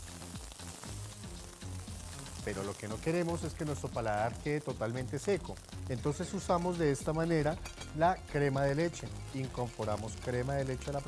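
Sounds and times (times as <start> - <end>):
background music: 0.0 - 11.0
food sizzling in a skillet: 0.0 - 11.0.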